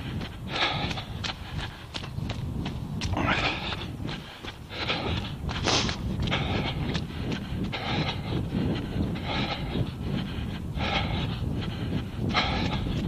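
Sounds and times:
hard rhythmic breathing: 0:00.0 - 0:13.0
low rumble: 0:00.0 - 0:13.0.

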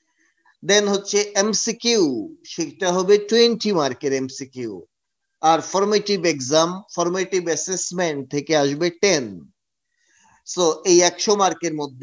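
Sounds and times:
man narrating a lecture: 0:00.6 - 0:04.8, 0:05.4 - 0:09.5, 0:10.4 - 0:12.0.

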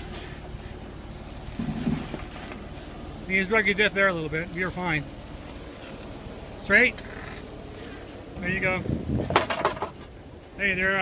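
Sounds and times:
engine running at low revs: 0:00.0 - 0:09.4.

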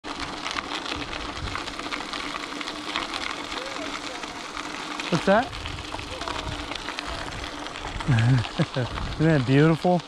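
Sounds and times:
bike tyres crunching on gravel: 0:00.0 - 0:10.0.

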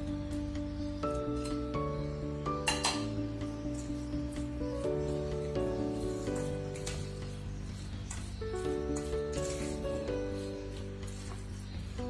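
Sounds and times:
instrumental music with held notes: 0:00.0 - 0:12.0.

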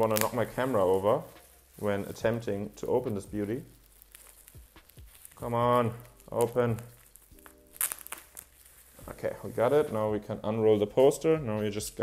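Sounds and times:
bubble wrap crackling and tearing: 0:00.0 - 0:12.0.

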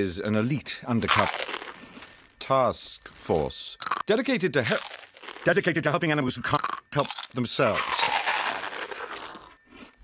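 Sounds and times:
cartoon crunching snack: 0:01.0 - 0:02.3, 0:03.7 - 0:10.0
plastic snack bag crinkle: 0:01.0 - 0:02.3, 0:04.6 - 0:05.7, 0:06.6 - 0:10.0.

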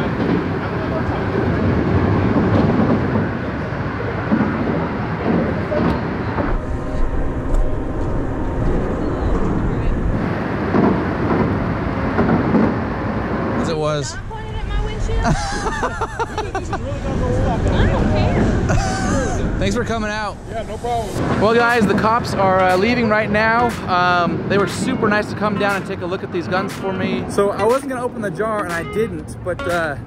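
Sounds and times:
heavy traffic rumble: 0:00.0 - 0:30.0.

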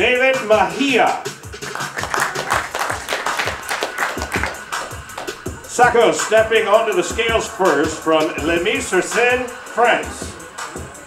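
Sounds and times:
hip-hop music with steady beat: 0:00.0 - 0:11.0
audience clapping: 0:01.5 - 0:05.6.

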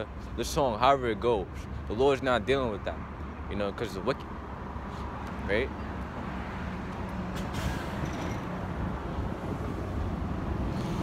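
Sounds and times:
vehicle engines rumbling: 0:00.0 - 0:11.0.

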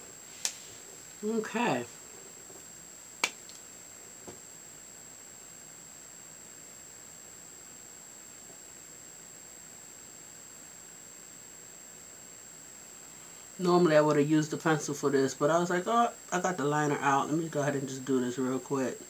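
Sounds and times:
faint high-pitched whine: 0:00.0 - 0:19.0
sharp click: 0:03.2 - 0:03.6.

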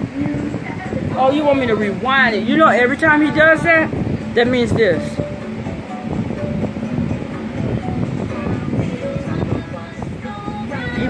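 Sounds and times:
low rumbling noise: 0:00.0 - 0:11.0
children's music from tv: 0:03.7 - 0:11.0.

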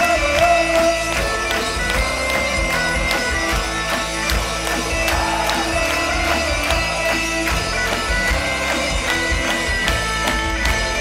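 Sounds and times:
bagpipes melody: 0:00.0 - 0:11.0
rock band playing: 0:00.0 - 0:11.0
steady drum beat: 0:00.0 - 0:11.0.

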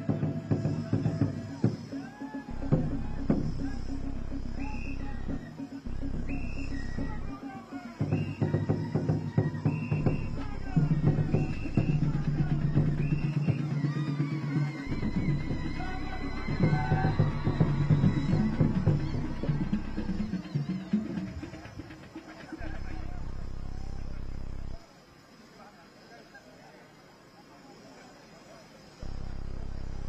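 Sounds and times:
drums beaten in fast rhythm: 0:00.0 - 0:24.8
voices singing: 0:00.0 - 0:24.8.

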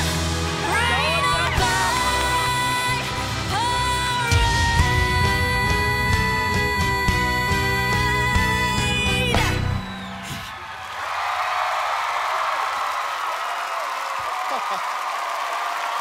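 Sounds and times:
audience applause and cheering: 0:00.0 - 0:05.1, 0:09.2 - 0:16.0
full band playing: 0:00.0 - 0:10.5.

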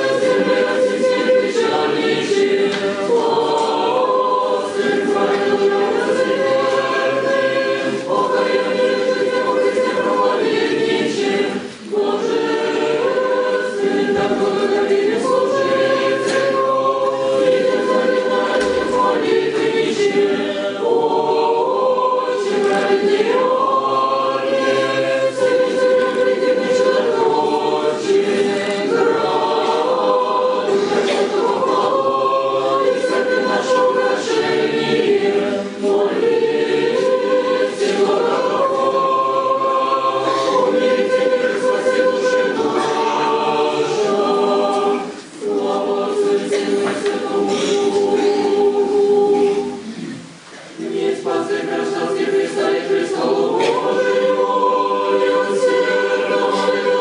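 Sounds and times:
choir singing a cappella: 0:00.0 - 0:57.0.

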